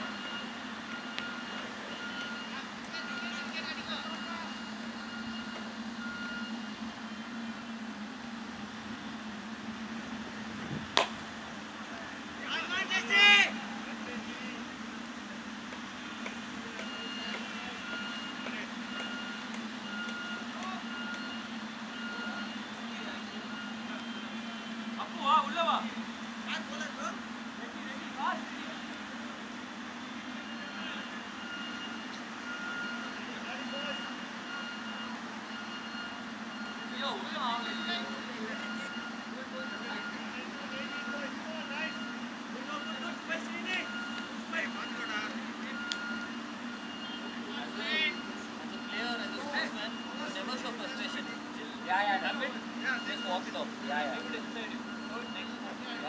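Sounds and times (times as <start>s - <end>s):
faint beeping tone: 0.0s - 9.9s, 12.4s - 27.0s, 30.0s - 56.0s
players shouting: 11.8s - 14.7s.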